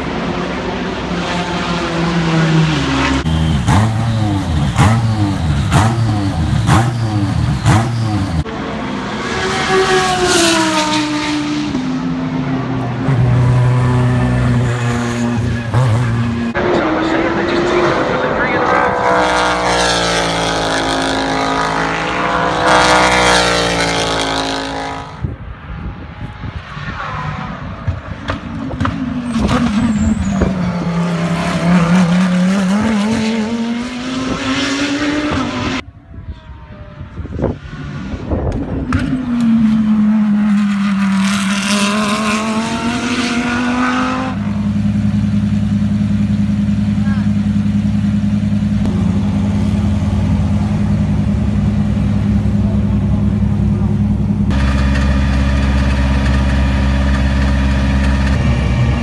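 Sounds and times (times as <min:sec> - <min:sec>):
race car engine: 0:00.0 - 0:59.0
race cars passing: 0:00.0 - 0:59.0.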